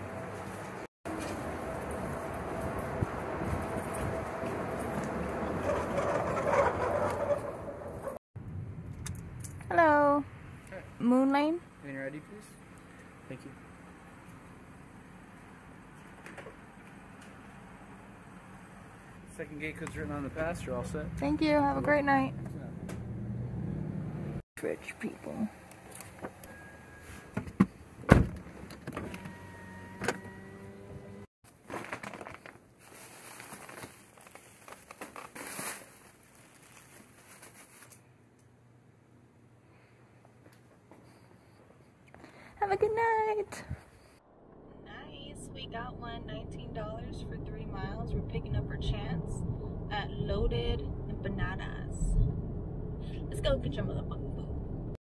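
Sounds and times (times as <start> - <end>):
car road and engine noise: 0.0 - 31.3, 44.2 - 55.0
car power window motor: 28.8 - 31.2.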